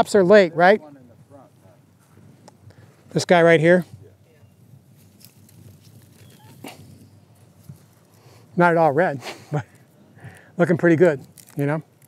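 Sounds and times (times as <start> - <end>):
faint outdoor background: 0.0 - 12.0
rustling leaves and soil: 1.2 - 12.0.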